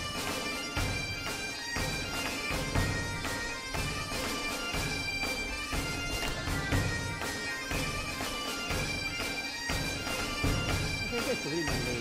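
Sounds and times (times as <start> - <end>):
bagpipe-like music with beat: 0.0 - 12.0.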